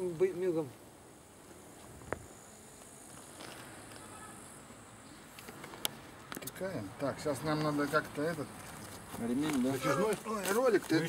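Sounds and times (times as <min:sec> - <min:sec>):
high insect hiss: 0:00.0 - 0:11.0.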